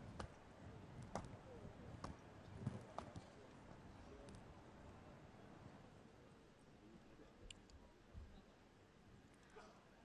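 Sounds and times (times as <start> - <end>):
faint clicks and knocks: 0.0 - 5.0.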